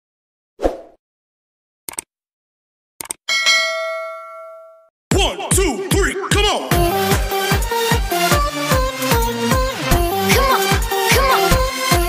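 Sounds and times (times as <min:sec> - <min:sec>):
bright bell ding: 0:03.3 - 0:04.9
electronic dance music: 0:05.1 - 0:12.0.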